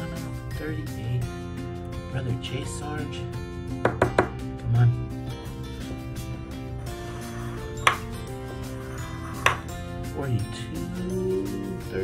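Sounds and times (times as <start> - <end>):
background music: 0.0 - 12.0
coin scraping scratch card: 6.8 - 9.8.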